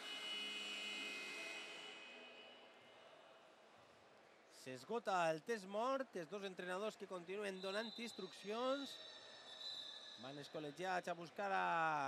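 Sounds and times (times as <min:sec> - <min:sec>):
steady multi-pitch tone: 0:00.0 - 0:02.9.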